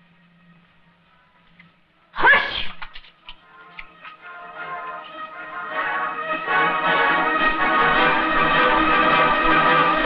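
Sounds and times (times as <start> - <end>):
short shrill cry: 2.2 - 2.8
orchestral film music: 3.4 - 10.0.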